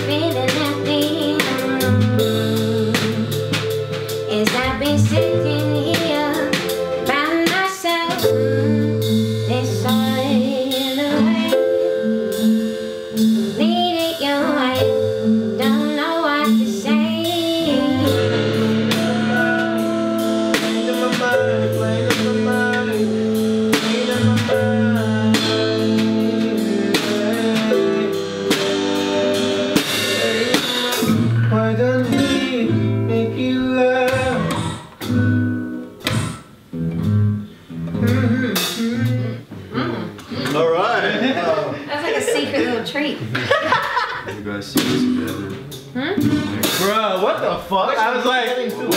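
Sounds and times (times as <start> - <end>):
person singing: 0.0 - 12.4, 13.4 - 35.0, 37.9 - 40.5
keyboard: 0.0 - 39.9
electric guitar: 0.0 - 40.6
drum kit: 0.0 - 48.9.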